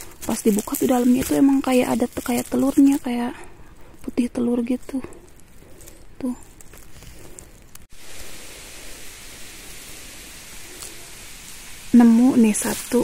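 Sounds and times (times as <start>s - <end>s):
faint rustles and clicks: 0.0s - 8.4s
steady outdoor hiss: 0.0s - 13.0s.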